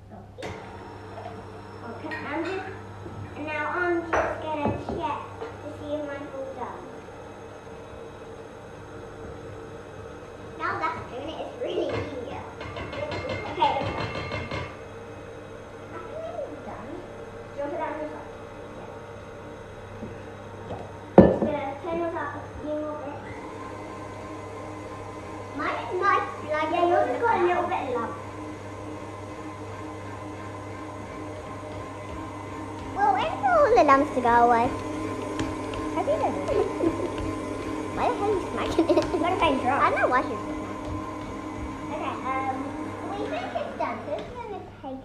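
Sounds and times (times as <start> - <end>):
stand mixer motor running: 0.3 - 45.0.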